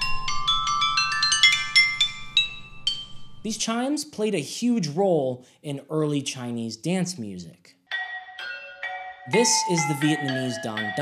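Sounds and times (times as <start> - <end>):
stone chimes struck in a melody: 0.0 - 3.5, 7.9 - 11.0.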